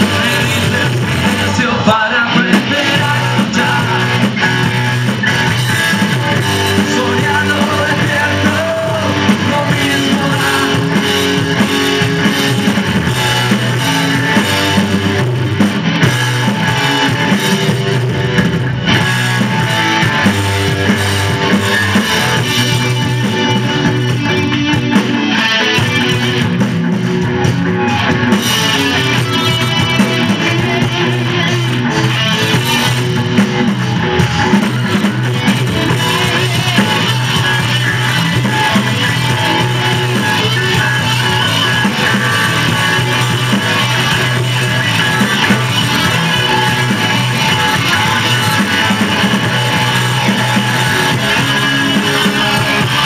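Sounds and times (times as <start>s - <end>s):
bass guitar: 0.0s - 53.0s
drum kit: 0.0s - 53.0s
electric guitars: 0.0s - 53.0s.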